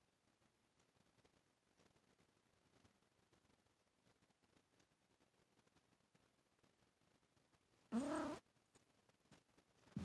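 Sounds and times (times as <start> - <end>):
cat meowing: 7.9 - 8.4.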